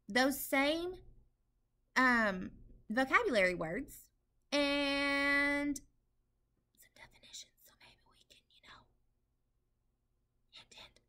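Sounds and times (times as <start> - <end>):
woman whispering: 6.8 - 9.0, 10.5 - 11.0.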